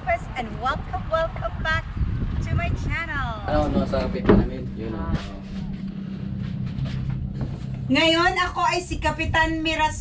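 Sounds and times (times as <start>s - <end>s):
boat engine droning: 3.4s - 10.0s.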